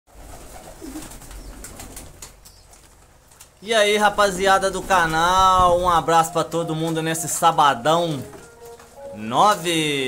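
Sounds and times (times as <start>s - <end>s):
wing flaps: 0.1s - 6.0s
birds clicking and scuffling: 0.1s - 9.7s
pigeon cooing: 0.2s - 2.7s.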